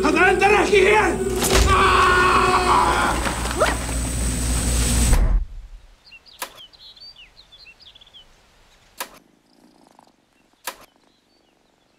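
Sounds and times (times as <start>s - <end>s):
faint birdsong chirping: 5.6s - 11.9s
sharp clicks: 6.4s - 6.7s, 9.0s - 9.2s, 10.6s - 10.9s.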